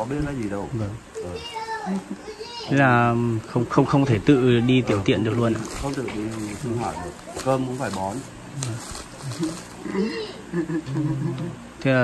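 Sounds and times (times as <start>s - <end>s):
person speaking: 0.0s - 10.5s.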